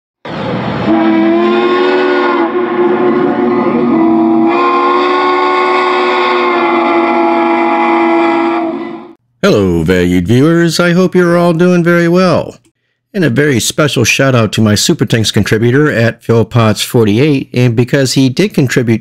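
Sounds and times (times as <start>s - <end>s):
steam locomotive chime whistle: 0.8s - 9.2s.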